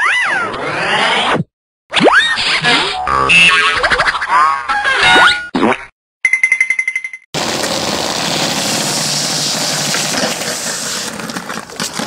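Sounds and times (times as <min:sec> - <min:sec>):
cartoon boing sound effects: 0:03.0 - 0:04.2
skateboard wheels rolling on concrete: 0:07.4 - 0:12.0.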